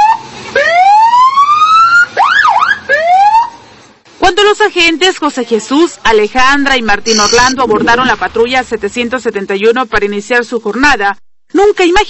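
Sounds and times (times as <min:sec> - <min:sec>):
police siren wailing and yelping: 0:00.0 - 0:03.6.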